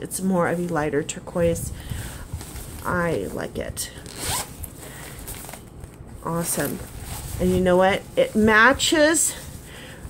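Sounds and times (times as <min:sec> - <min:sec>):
bag handling: 0:02.0 - 0:09.5
zipper on fabric bag: 0:03.9 - 0:04.8.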